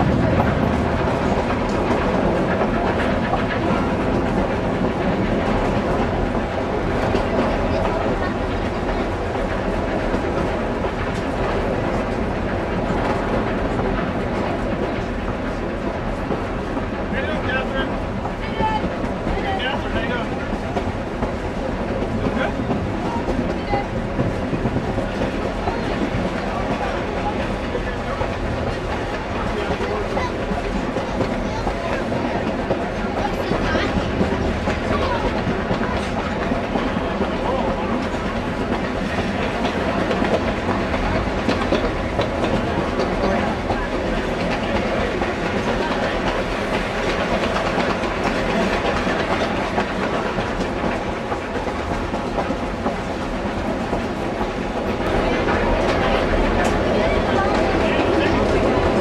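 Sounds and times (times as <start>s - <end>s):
train cars rattling: 0.0s - 59.0s
train wheels clattering over rail joints: 0.0s - 59.0s.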